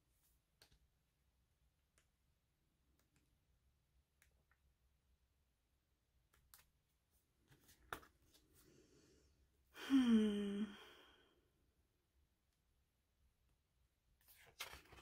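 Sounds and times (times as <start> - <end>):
pages turning: 7.4 - 8.6, 14.2 - 15.0
voiced sigh: 8.8 - 11.4.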